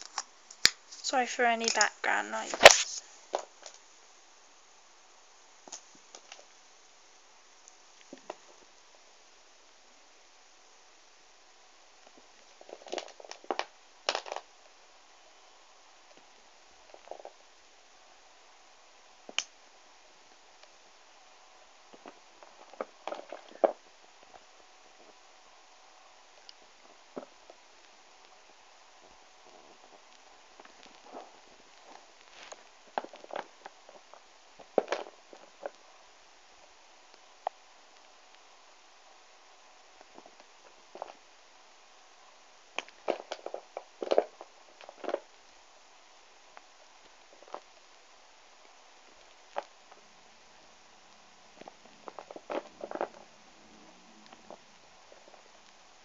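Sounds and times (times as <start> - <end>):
faint hiss: 0.0 - 56.0.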